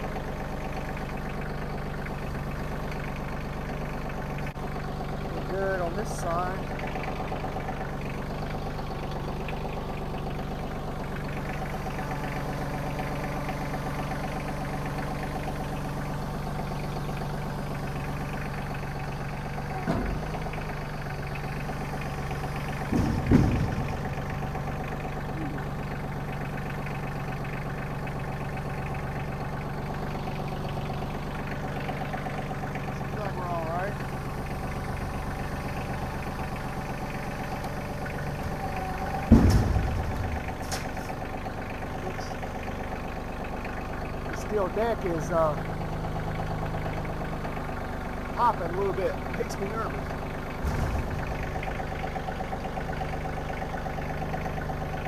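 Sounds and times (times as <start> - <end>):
tractor clunking onto trailer: 0.0 - 55.0
tractor diesel engine running: 0.0 - 55.0.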